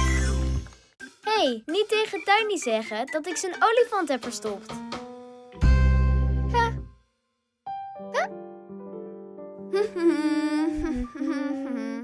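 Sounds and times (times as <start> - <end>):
person humming: 9.7 - 12.0.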